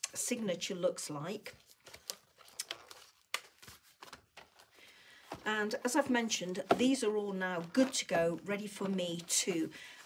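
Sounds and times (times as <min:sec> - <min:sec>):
paper rustling and tapping: 0:01.6 - 0:09.5.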